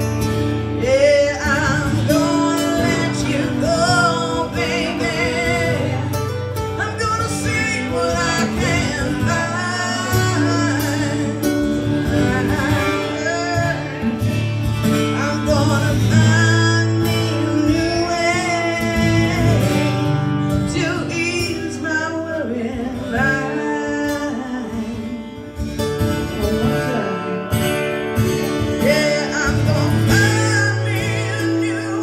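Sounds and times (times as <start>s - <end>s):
acoustic guitar: 0.0s - 32.0s
country band playing: 0.0s - 32.0s
voices singing: 0.8s - 20.0s.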